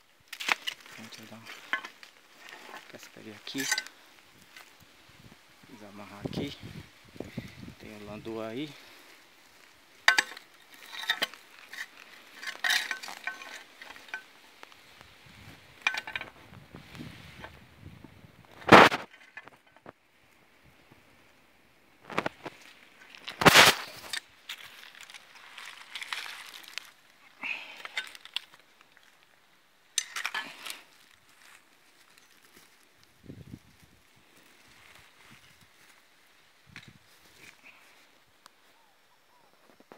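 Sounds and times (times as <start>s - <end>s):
rustles and clicks on leaves: 0.0s - 17.6s, 22.0s - 38.7s.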